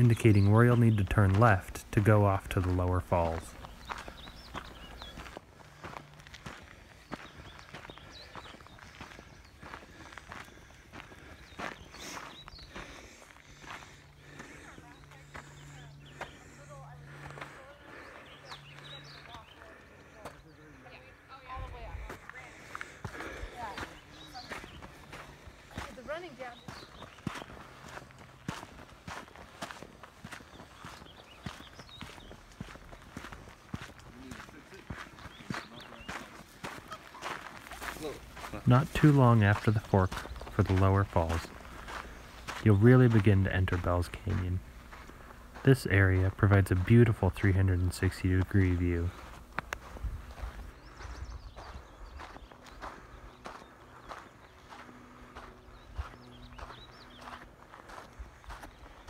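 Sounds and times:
background voices: 0:00.0 - 0:04.4, 0:37.8 - 0:49.2
footsteps on gravel: 0:00.0 - 0:59.0.

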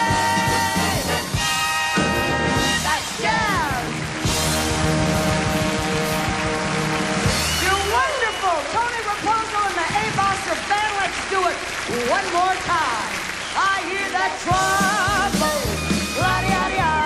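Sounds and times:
big band playing swing: 0:00.0 - 0:17.0.

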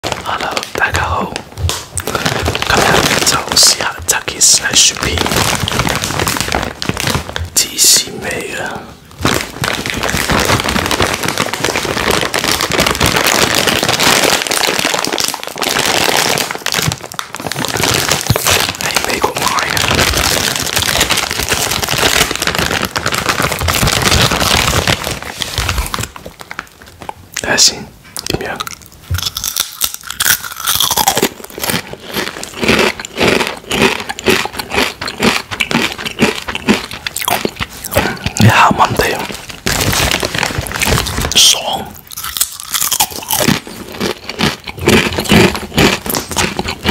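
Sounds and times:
plastic chip bag crinkling: 0:00.0 - 0:27.6, 0:28.2 - 0:46.9.

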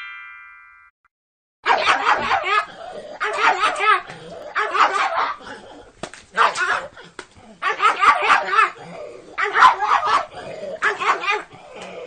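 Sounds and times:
dog barking in high yaps: 0:01.6 - 0:05.4, 0:06.4 - 0:06.9, 0:07.6 - 0:08.8, 0:09.4 - 0:11.5.

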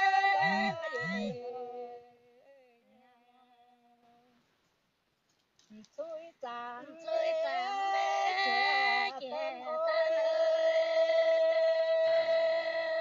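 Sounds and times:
women singing a folk duet: 0:00.0 - 0:04.4, 0:05.7 - 0:13.0.

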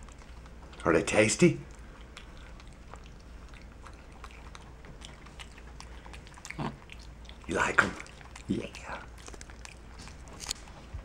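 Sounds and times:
monkey chewing soft clicks: 0:01.6 - 0:10.8.

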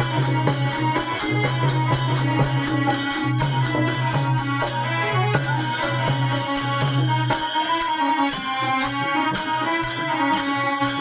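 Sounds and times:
harmonium held notes: 0:00.0 - 0:11.0.

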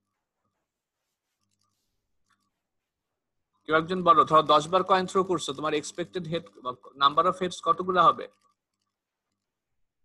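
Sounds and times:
man's voice: 0:03.7 - 0:08.3.

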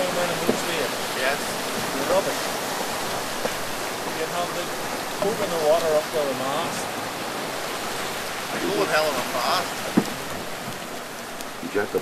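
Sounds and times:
sea water rushing: 0:00.0 - 0:12.0.

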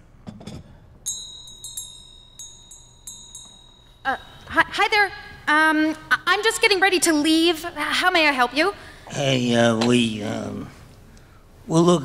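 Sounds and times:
small bell ringing: 0:01.0 - 0:05.5.

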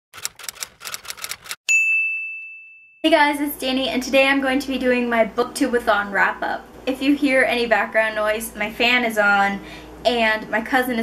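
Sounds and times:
typewriter keys clacking: 0:00.2 - 0:01.6.

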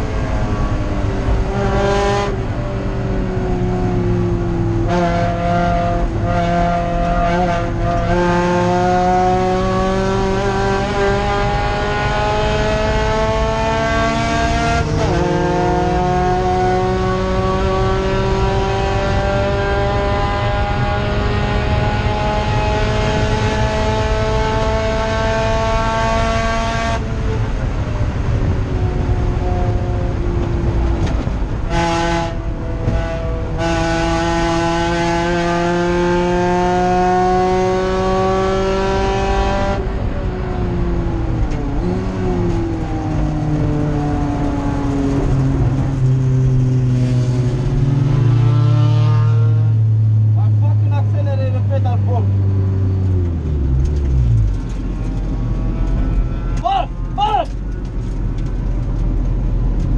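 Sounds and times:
race car engine revving: 0:00.0 - 0:59.9.

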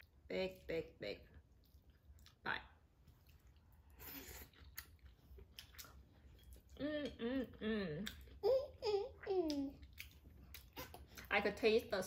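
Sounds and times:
person chewing noodles: 0:03.2 - 0:11.2.

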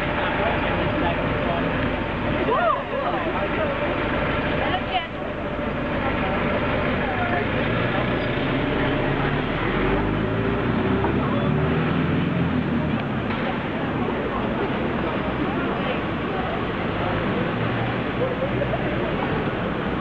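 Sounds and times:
heavy vehicle engine running: 0:00.0 - 0:20.0
people chattering: 0:00.0 - 0:20.0
traffic noise: 0:00.0 - 0:20.0.

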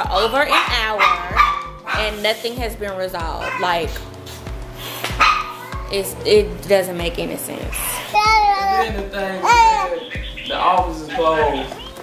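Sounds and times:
background music: 0:00.0 - 0:12.0
dog barking: 0:00.4 - 0:02.3, 0:03.4 - 0:04.0, 0:05.2 - 0:05.9.

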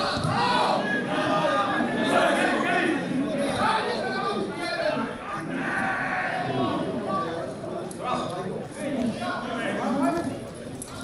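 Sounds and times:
people shouting on a football pitch: 0:00.0 - 0:07.0.

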